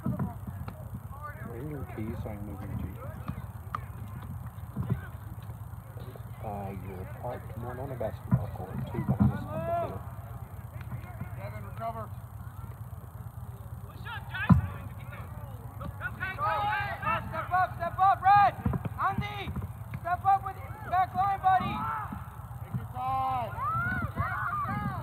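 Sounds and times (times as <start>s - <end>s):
players and spectators shouting: 0.0s - 25.0s.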